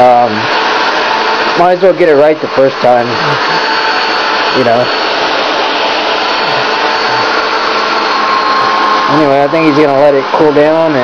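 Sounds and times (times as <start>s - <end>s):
cooling fan whirring: 0.0s - 11.0s.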